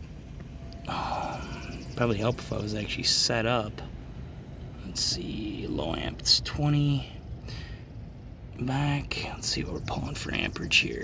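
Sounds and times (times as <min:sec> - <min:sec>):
man sighing: 0:00.8 - 0:01.7.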